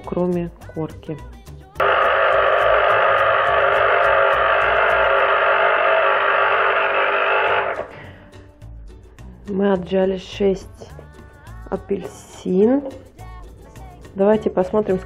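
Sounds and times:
electric citrus juicer motor humming: 1.8s - 8.0s.

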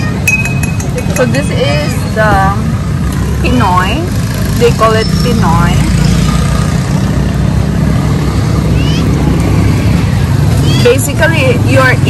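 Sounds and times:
motorcycle engines rumbling: 0.0s - 12.0s.

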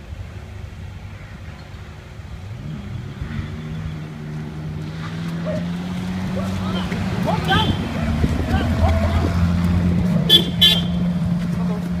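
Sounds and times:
car engine running at low revs: 0.0s - 12.0s
high-pitched horn toots: 10.3s - 11.0s.

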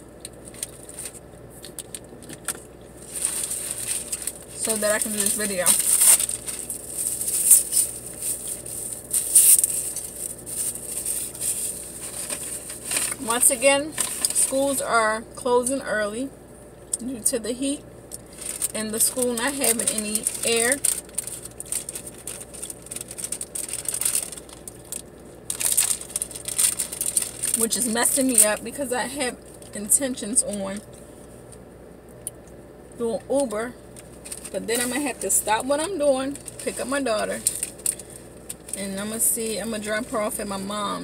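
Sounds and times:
packaging rustling and crinkling: 0.4s - 14.6s, 18.2s - 28.5s, 33.9s - 38.8s.

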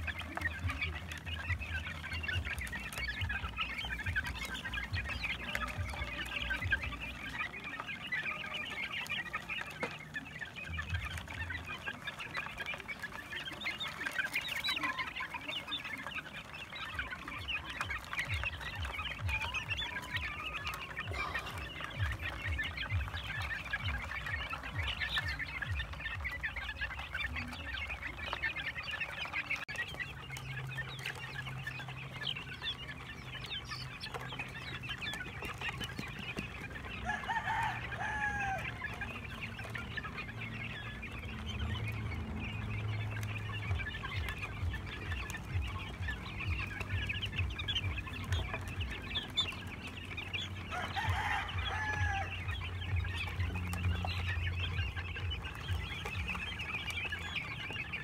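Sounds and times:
louder longer chicken calls: 0.0s - 42.2s, 43.4s - 58.0s
chicks peeping and clucking: 0.0s - 58.0s.

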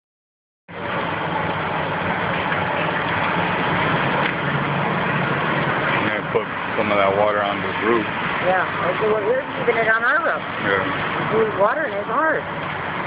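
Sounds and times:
engine humming: 0.7s - 13.0s
steady rushing noise: 0.7s - 13.0s.

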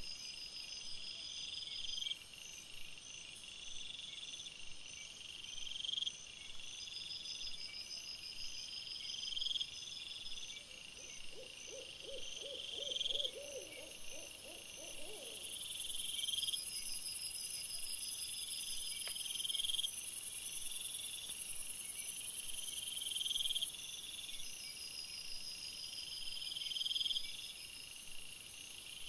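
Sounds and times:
night insects chirping: 0.0s - 29.0s.

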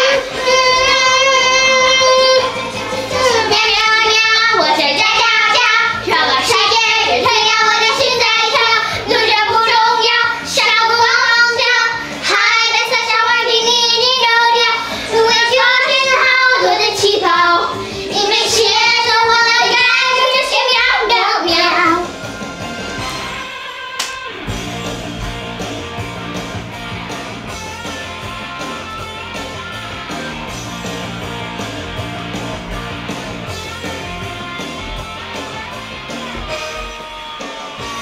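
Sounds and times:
girls singing: 0.0s - 22.1s
pop music: 0.0s - 38.0s.

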